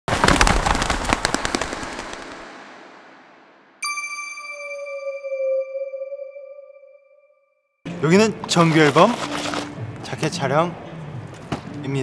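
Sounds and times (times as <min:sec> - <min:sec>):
rapid sharp crackles and pops: 0:00.1 - 0:02.9
bright ringing chime: 0:03.8 - 0:07.6.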